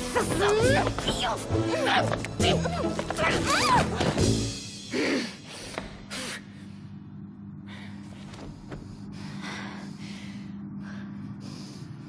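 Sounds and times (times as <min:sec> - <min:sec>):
breathy huff: 0:04.8 - 0:06.7.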